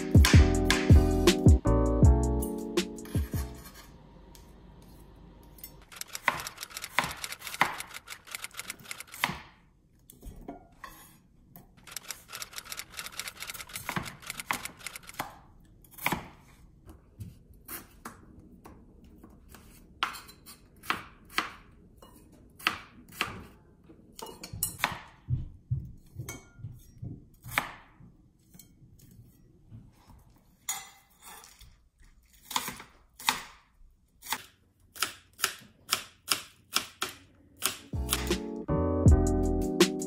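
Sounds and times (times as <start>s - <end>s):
music: 0.0s - 3.7s, 37.9s - 40.0s.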